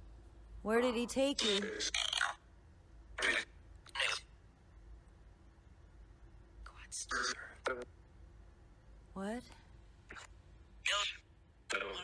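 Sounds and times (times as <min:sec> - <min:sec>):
whispery voice fragments from radio: 0:06.7 - 0:07.9, 0:10.9 - 0:12.0.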